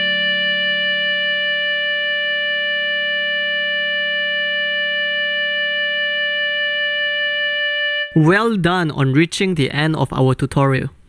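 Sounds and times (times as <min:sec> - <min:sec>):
clarinet sustained note: 0:00.0 - 0:08.3
low held backing note: 0:00.0 - 0:08.3.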